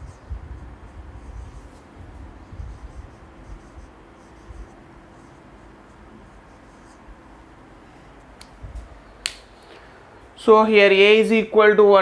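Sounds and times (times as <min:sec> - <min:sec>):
marker pen scratching on whiteboard: 0:00.0 - 0:08.4.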